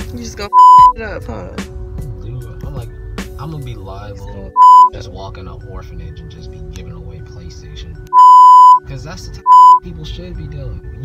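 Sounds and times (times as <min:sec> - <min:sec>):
music: 0:00.0 - 0:11.0
censor bleep tone: 0:00.5 - 0:01.0, 0:04.6 - 0:05.0, 0:08.2 - 0:08.8, 0:09.5 - 0:09.8.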